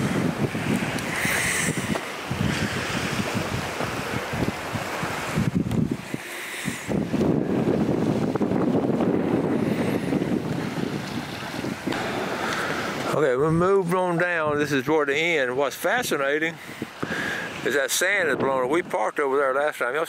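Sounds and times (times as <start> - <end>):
wind buffeting microphone: 0.0 - 19.2.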